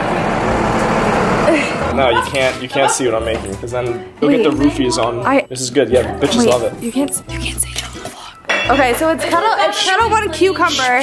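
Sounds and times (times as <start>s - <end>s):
street traffic hiss and rumble: 0.0s - 2.7s.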